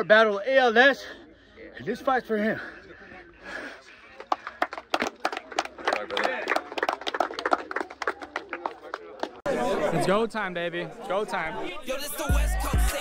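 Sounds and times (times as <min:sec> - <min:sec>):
small crowd clapping: 0:04.0 - 0:09.5.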